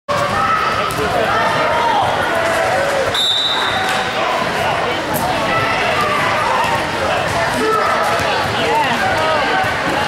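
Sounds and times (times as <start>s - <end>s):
spectators' voices: 0.1s - 10.0s
referee's whistle blast: 3.1s - 3.9s.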